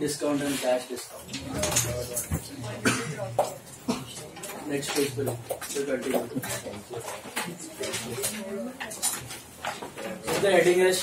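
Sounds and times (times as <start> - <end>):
person coughing: 2.7 - 4.2.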